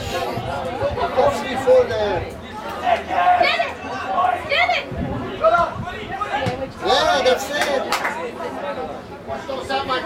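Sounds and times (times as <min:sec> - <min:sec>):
overlapping spectator chatter: 0:00.0 - 0:10.0
loud shout: 0:02.7 - 0:07.9.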